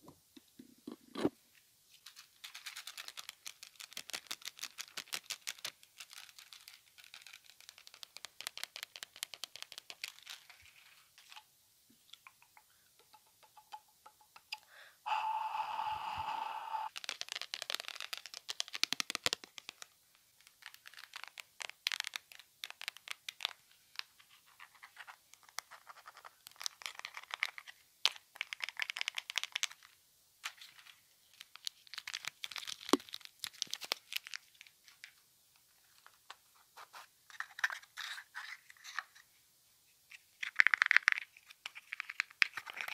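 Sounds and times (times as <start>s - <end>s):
rapid crackling and tapping: 1.9s - 11.4s, 16.9s - 30.0s, 31.3s - 36.4s
steady buzzing tone: 15.1s - 16.9s.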